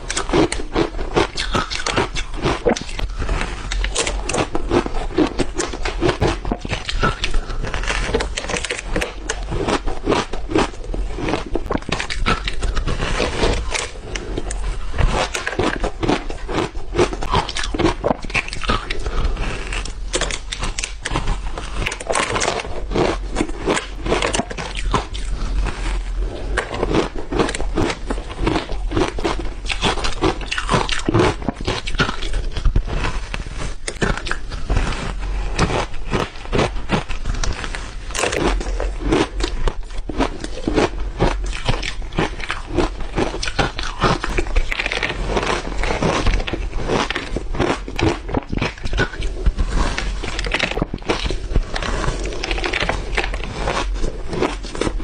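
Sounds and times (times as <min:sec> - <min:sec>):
teeth crunching ice: 0:00.0 - 0:55.0.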